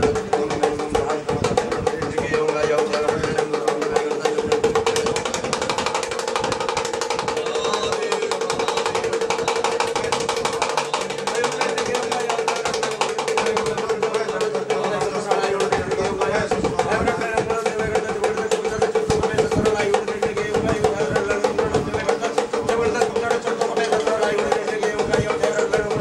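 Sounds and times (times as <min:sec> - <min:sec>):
fast percussion rhythm: 0:00.0 - 0:26.0
voices singing devotional music: 0:00.0 - 0:26.0.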